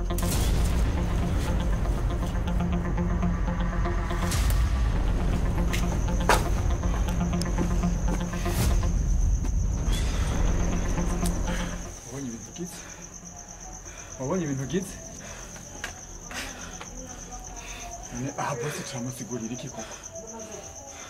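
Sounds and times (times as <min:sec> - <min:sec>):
cricket trilling: 0:00.0 - 0:21.0
low background music: 0:00.0 - 0:21.0.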